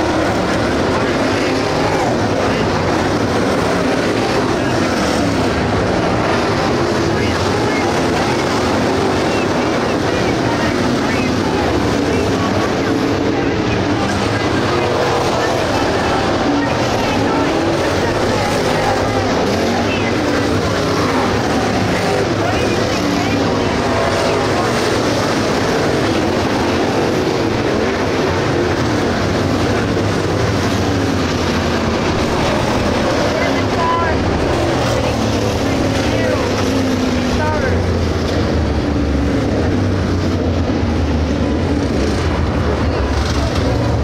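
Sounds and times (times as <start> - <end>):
race car engines passing: 0.0 - 44.0.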